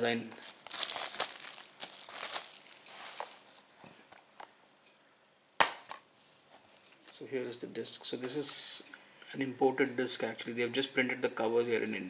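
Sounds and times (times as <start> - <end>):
plastic wrap crinkling: 0.0 - 4.5.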